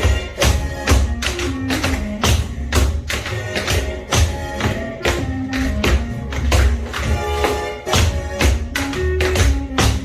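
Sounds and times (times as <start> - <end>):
recorded music: 0.0 - 10.0
tap shoes on hard floor: 0.0 - 10.0.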